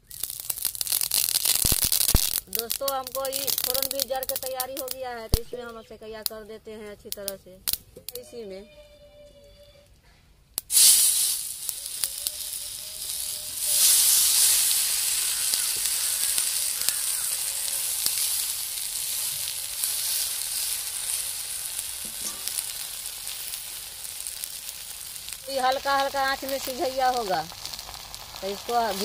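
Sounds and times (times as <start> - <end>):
food sizzling in hot oil: 0.0 - 5.6, 10.6 - 29.0.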